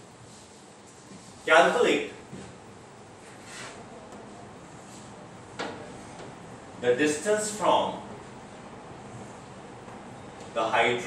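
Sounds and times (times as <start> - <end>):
chalk scraping on chalkboard: 3.2 - 3.8
man speaking: 6.8 - 8.1, 10.6 - 11.0.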